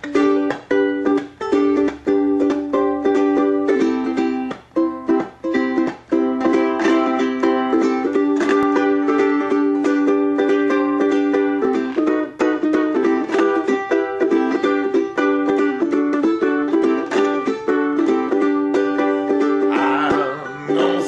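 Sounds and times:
ukulele strumming chords: 0.0s - 21.0s.

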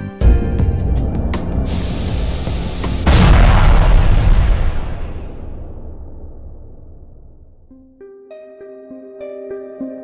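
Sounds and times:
loud hiss: 1.7s - 5.3s
low rumble: 2.1s - 7.7s.

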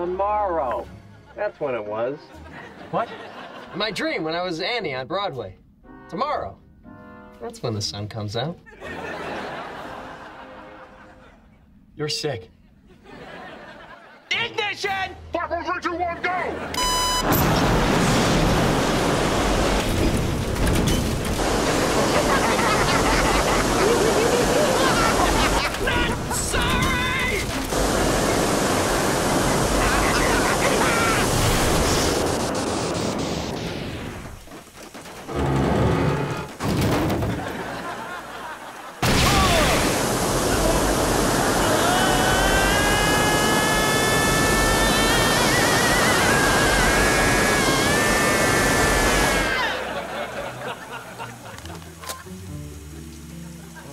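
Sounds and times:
background music: 0.0s - 12.2s, 14.2s - 17.2s, 49.6s - 53.9s
rocket engine hissing rush: 17.4s - 20.5s, 21.2s - 34.5s, 39.0s - 50.3s.

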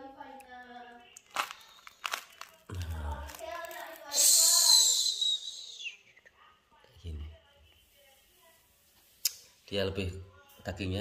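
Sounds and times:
fruit husk cracking: 1.2s - 4.2s.

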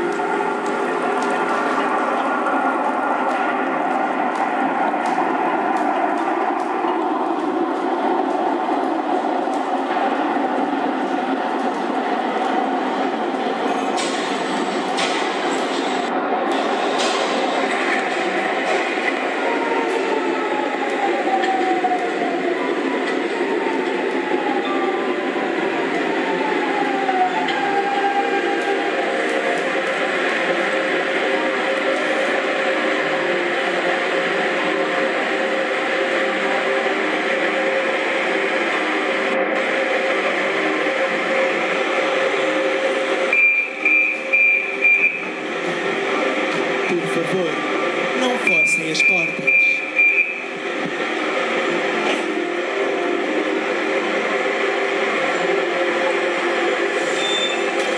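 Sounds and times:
train rolling rumble: 0.0s - 57.9s
door-warning beeps: 43.4s - 45.2s, 48.4s - 50.4s
train brakes whining: 56.8s - 57.9s.

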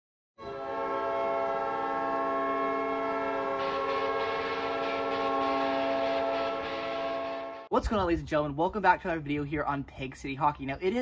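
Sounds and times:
deep air horn blast: 0.4s - 7.7s.

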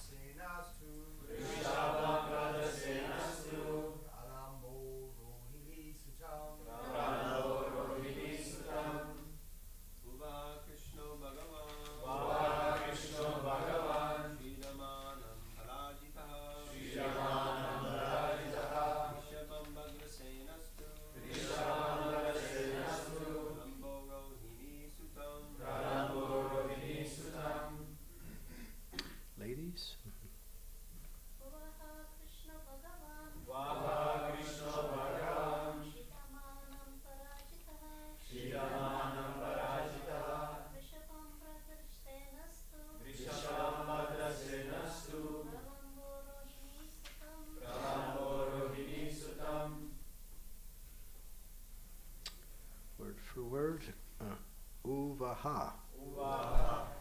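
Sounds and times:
group of voices chanting in unison: 1.2s - 4.1s, 6.6s - 9.3s, 12.0s - 14.8s, 16.4s - 19.5s, 21.1s - 23.8s, 25.4s - 28.0s, 33.4s - 36.0s, 38.2s - 40.8s, 43.0s - 45.6s, 47.6s - 49.9s, 56.0s - 57.0s.

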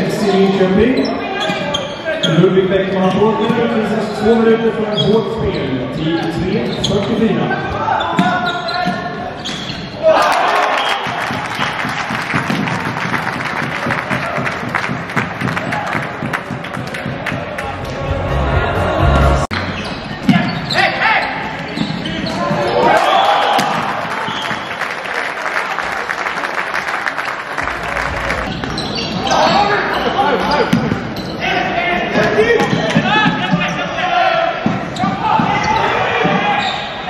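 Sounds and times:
players and spectators shouting: 7.0s - 11.6s, 20.2s - 24.5s, 27.6s - 37.0s.

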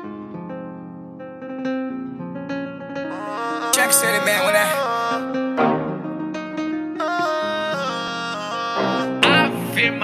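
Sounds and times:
plucked string melody: 0.0s - 10.0s.

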